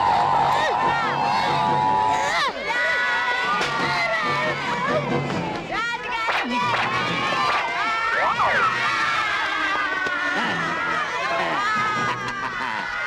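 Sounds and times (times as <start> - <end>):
children shouting and cheering: 0.0 - 13.0.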